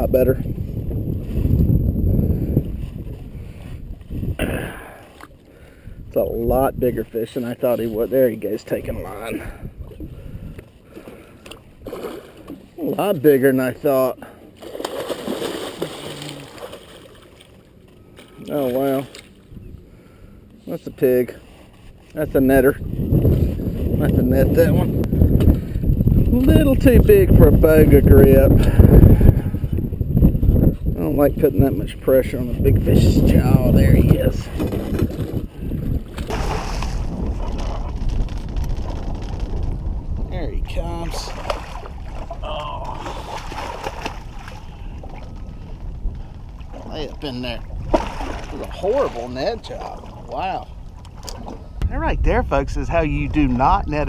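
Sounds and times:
wind rumbling on microphone: 0.0 - 13.1, 18.7 - 54.0
water splashing and sloshing: 0.4 - 6.1, 7.0 - 31.5, 32.2 - 51.8
fish splashing at surface: 14.6 - 17.6, 36.2 - 37.8, 41.2 - 44.7, 47.8 - 48.8.

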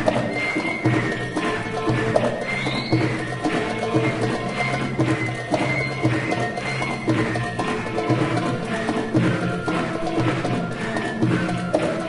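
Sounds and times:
hand percussion beat: 0.0 - 12.0
traditional string and flute ensemble: 0.0 - 12.0.

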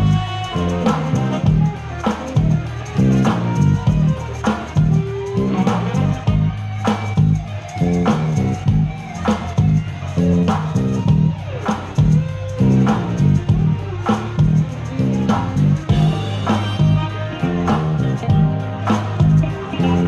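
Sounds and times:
electric guitar solo: 0.0 - 20.0
live band playing: 0.0 - 20.0.

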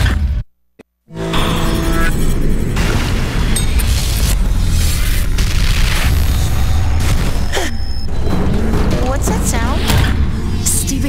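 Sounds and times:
music: 1.1 - 11.0.

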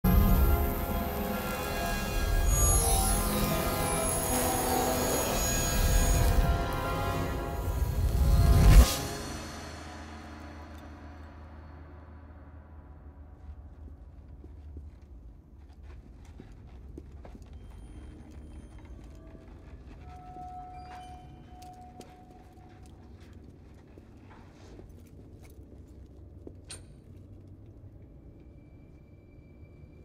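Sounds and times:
soft footsteps: 13.1 - 27.4
clear held tone: 17.5 - 22.8.

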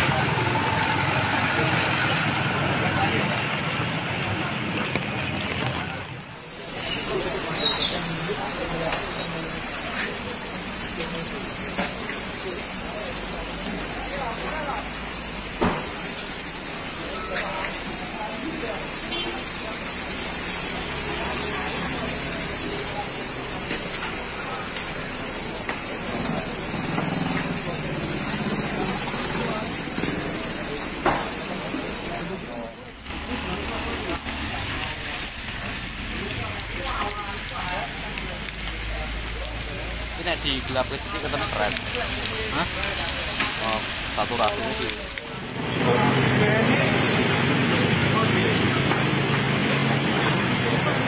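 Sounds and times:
people calling and talking: 0.0 - 51.0
fire crackling: 0.1 - 51.0.

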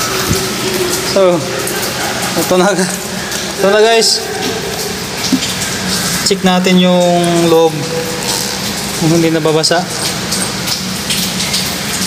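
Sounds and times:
tap water splashing onto bag: 0.0 - 0.9, 4.4 - 6.3.

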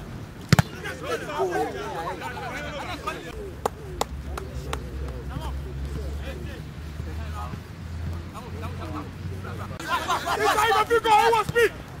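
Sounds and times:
distant players shouting: 0.5 - 12.0.

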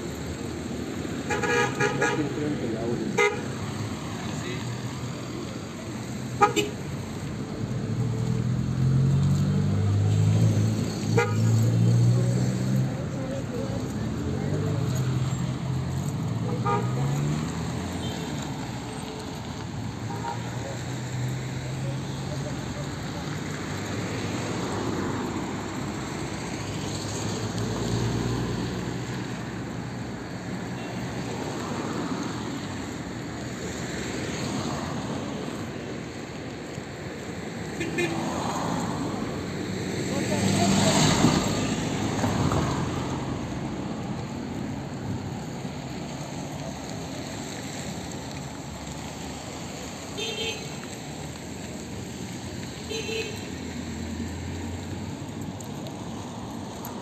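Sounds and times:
cars driving past: 0.0 - 57.0.

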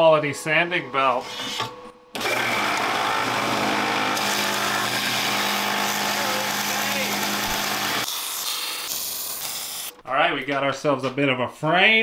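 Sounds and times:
belt sander grinding metal: 2.2 - 8.4
welding hiss: 7.4 - 10.0.

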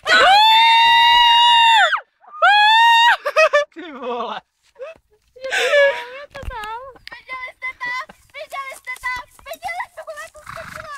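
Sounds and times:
woman screaming with excitement: 0.1 - 3.3.

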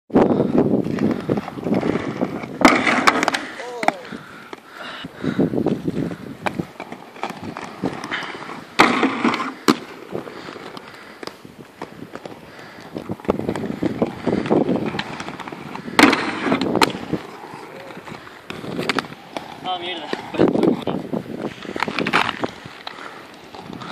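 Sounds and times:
skate wheels rolling on paving: 0.1 - 23.9
skates scraping along curb: 0.3 - 23.9.

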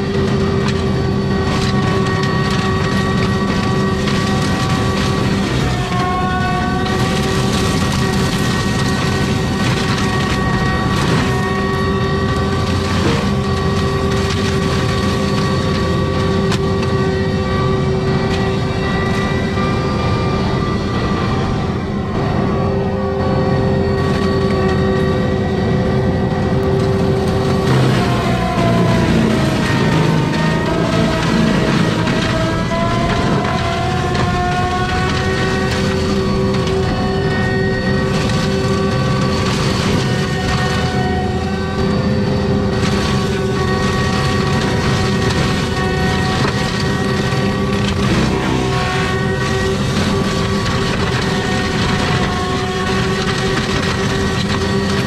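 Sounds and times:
wood crunching: 0.0 - 19.4, 26.2 - 55.0
mulcher drum and engine whine: 0.0 - 55.0.

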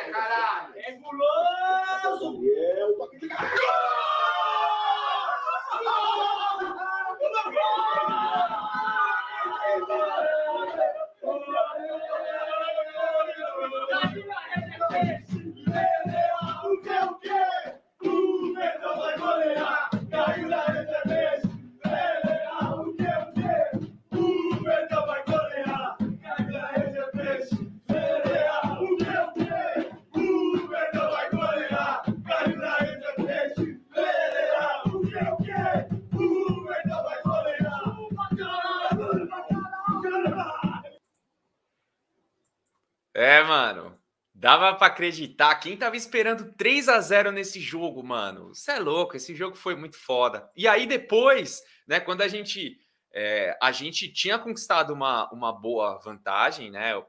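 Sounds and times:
men chanting a supporters' song: 0.0 - 2.6, 3.2 - 41.0
snare drum: 13.9 - 17.0, 18.1 - 41.0
hand-held drums beating: 13.9 - 17.1, 19.1 - 41.0
bass drum: 14.0 - 17.0, 19.1 - 41.0.

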